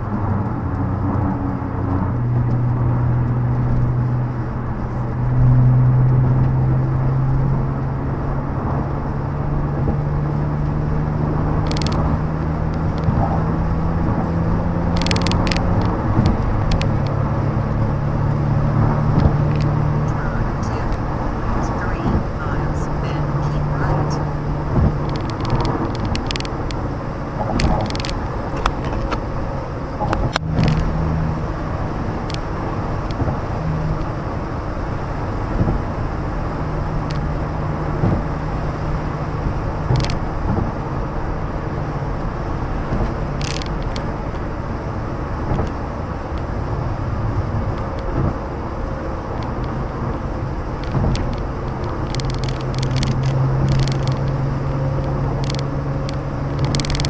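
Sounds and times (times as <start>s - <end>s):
car engine and tyre drone: 0.0s - 57.0s
low hum: 0.0s - 57.0s.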